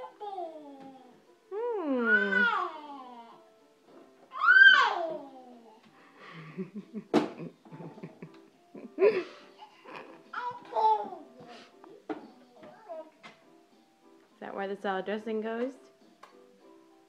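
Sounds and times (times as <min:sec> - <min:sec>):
toddler babbling and squealing: 0:02.0 - 0:03.4, 0:04.3 - 0:05.8, 0:10.3 - 0:11.3
woman laughing: 0:06.2 - 0:10.2
plastic bottle knock: 0:07.1 - 0:07.4.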